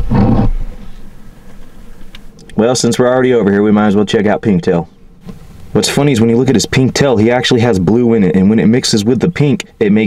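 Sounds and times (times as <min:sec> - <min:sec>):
short growl: 0:00.0 - 0:00.8
faint low hiss: 0:00.0 - 0:10.0.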